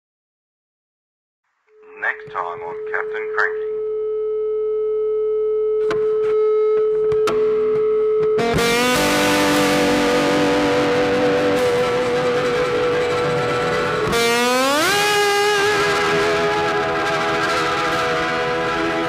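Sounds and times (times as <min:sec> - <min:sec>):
motorcycle engine accelerating: 0:08.4 - 0:19.0.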